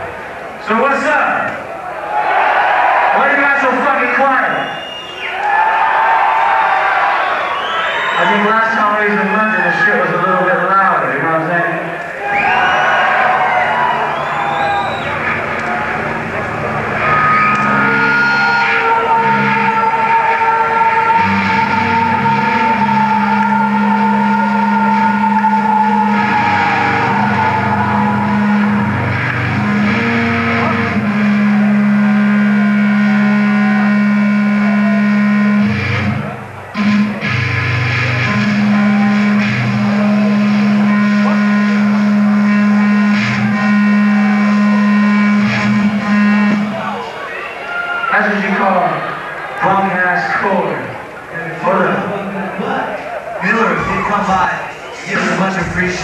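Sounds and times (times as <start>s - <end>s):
rock band droning low notes: 12.4s - 47.1s
high sustained falling tone: 13.4s - 47.0s.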